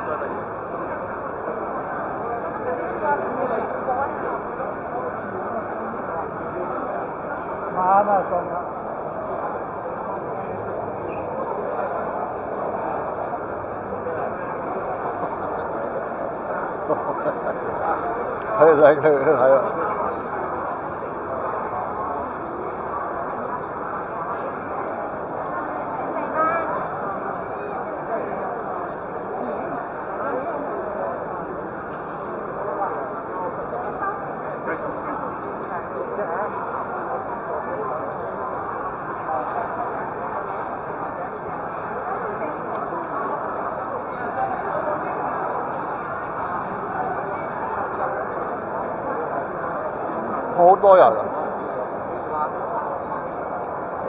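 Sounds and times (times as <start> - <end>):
crowd chatter: 0.0 - 54.0.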